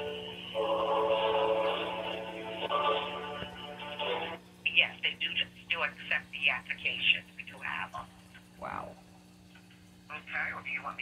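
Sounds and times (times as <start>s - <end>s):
hold music through phone speaker: 0.0s - 4.4s.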